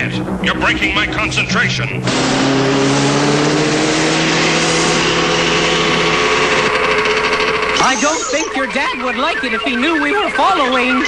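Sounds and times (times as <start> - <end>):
dense rushing noise: 0.0 - 6.9
cartoon vehicle engine: 0.0 - 11.0.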